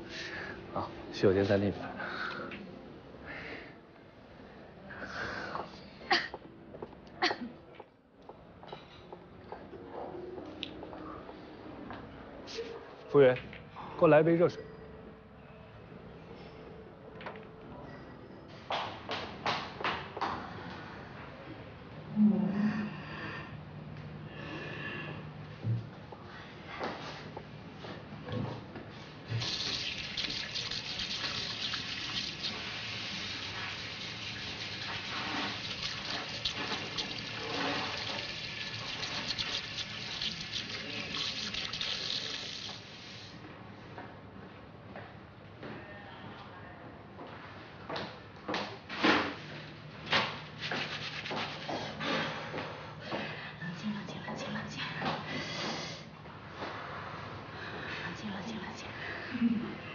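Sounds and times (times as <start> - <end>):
tap water running into basin: 29.4 - 43.2.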